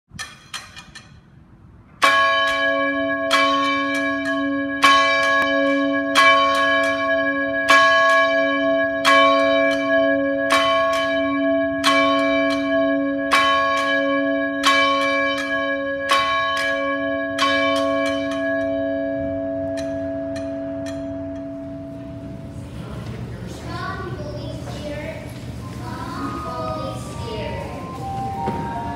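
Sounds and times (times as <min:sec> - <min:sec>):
church bell tolling: 0:02.0 - 0:23.0, 0:23.8 - 0:28.9.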